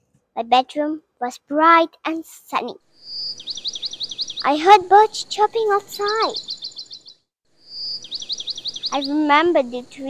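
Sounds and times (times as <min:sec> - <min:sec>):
bird chirping: 0:02.9 - 0:10.0.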